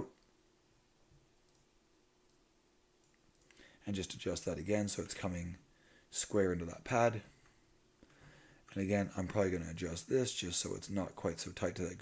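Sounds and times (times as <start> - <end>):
faint computer mouse clicks: 1.5 - 1.7.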